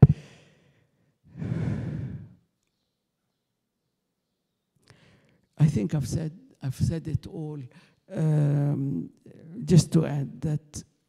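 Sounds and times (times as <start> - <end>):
person sighing into microphone: 1.4 - 2.4.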